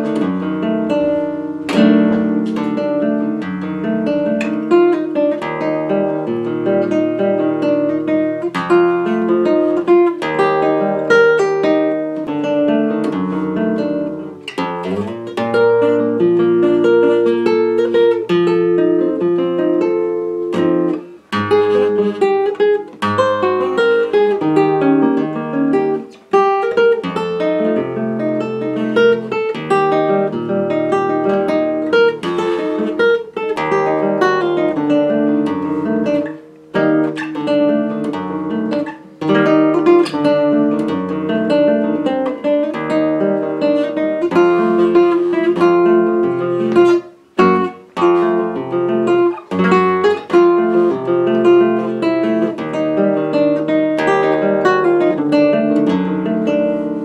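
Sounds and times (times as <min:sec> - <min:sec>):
flamenco guitar playing: 0:00.0 - 0:57.0.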